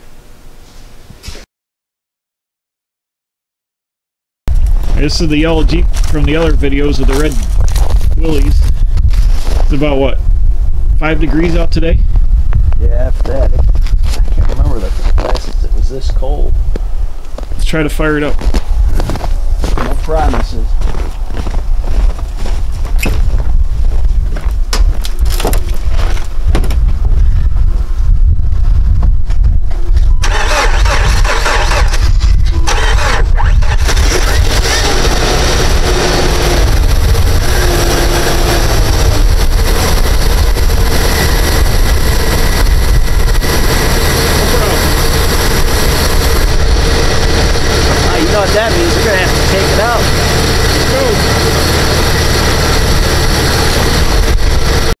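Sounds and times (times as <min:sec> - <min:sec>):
car engine cranking and running: 0:30.2 - 0:55.0.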